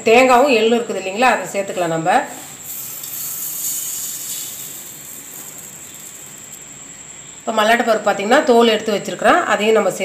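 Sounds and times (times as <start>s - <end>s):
grated coconut pouring into jar: 2.6s - 6.7s.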